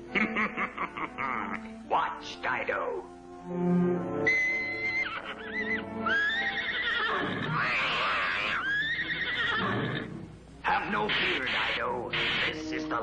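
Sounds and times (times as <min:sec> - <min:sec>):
background music: 0:00.0 - 0:13.0
cartoon horse neighing: 0:04.2 - 0:10.1.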